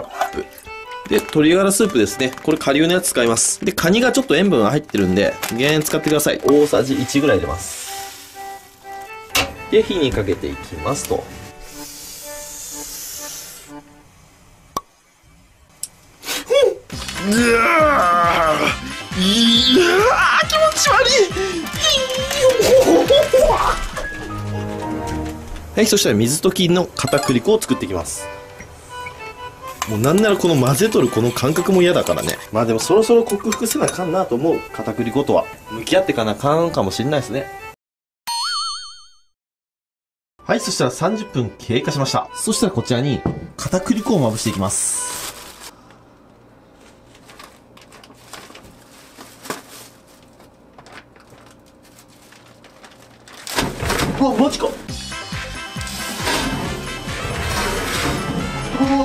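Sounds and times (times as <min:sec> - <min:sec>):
light background music: 0:00.0 - 0:15.7, 0:16.6 - 0:37.8, 0:40.4 - 0:45.8, 0:51.7 - 0:59.0
steady high hiss: 0:11.5 - 0:16.5.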